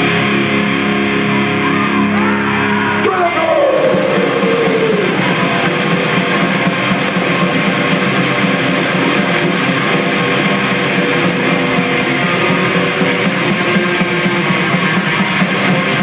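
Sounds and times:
metal band playing: 0.0s - 16.0s.

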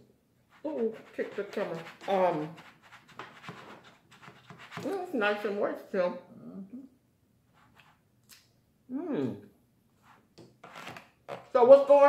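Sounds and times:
knife and fork scraping plastic bowl: 0.6s - 5.1s, 10.0s - 11.6s.

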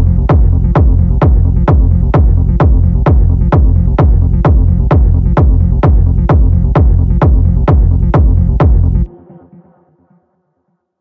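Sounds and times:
techno music with kick drum: 0.0s - 9.6s.

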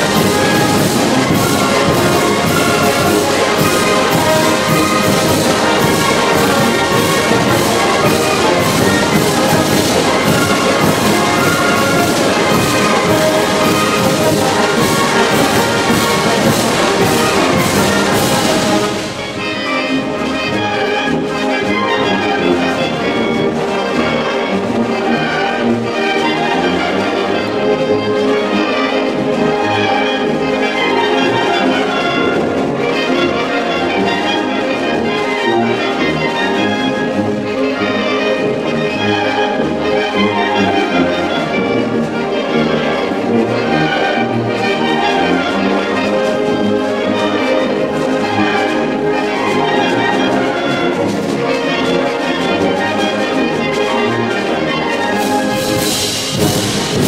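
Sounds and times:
percussion beat: 0.0s - 20.2s, 55.2s - 57.0s
wind band playing: 0.0s - 57.0s.

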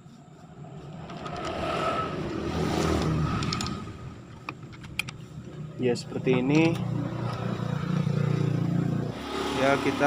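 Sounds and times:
motor vehicle passing: 0.1s - 10.0s.

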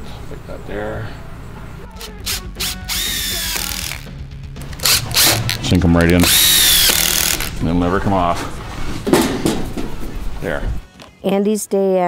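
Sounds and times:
background music: 1.0s - 12.0s
cordless drill whining into wood: 2.3s - 4.1s, 6.2s - 7.5s.

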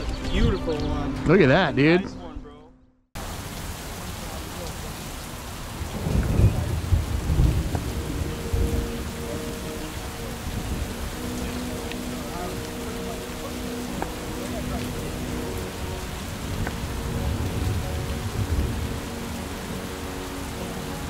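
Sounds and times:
steady rain hiss: 3.2s - 21.0s.

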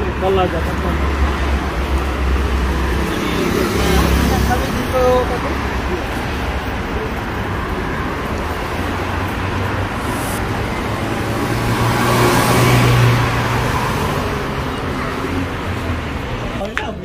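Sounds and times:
vehicle passing close: 0.0s - 16.6s
busy road traffic: 0.0s - 17.0s.

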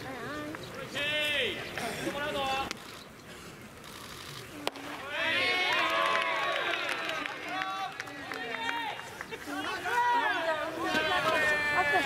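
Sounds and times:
voices shouting and calling out: 0.0s - 2.9s, 4.6s - 12.0s.

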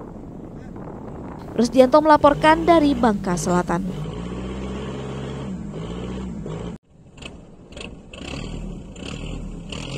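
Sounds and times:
boat engine humming: 0.0s - 8.1s.

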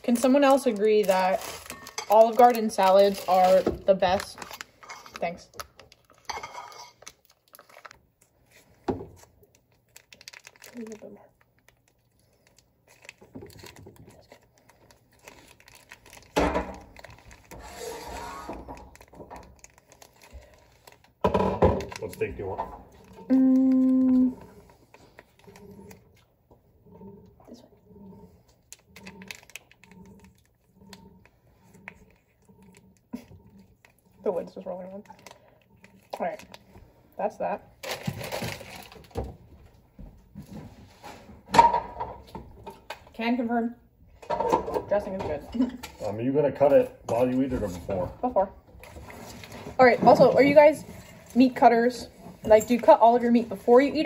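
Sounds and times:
plastic packet crinkling and tearing: 0.0s - 6.3s, 7.0s - 8.6s, 9.2s - 26.2s, 28.6s - 31.1s, 31.7s - 36.8s, 37.8s - 39.3s.

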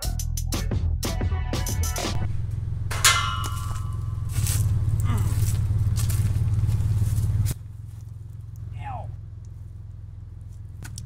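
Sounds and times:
steady low hum: 2.2s - 11.0s
metal gate clanging: 2.8s - 4.4s.

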